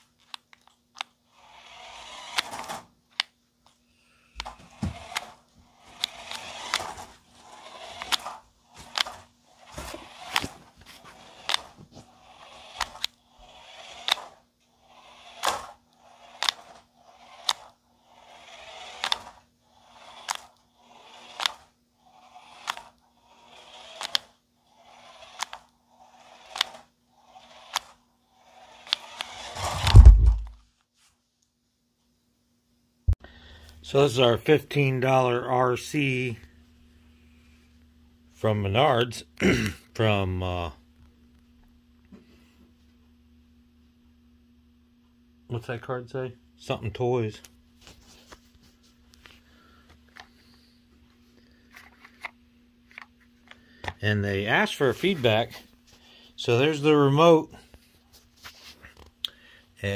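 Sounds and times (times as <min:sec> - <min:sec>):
toy truck electric motor whirring: 0:00.0 - 0:03.3, 0:04.4 - 0:30.5
loud low thump: 0:29.8 - 0:30.6.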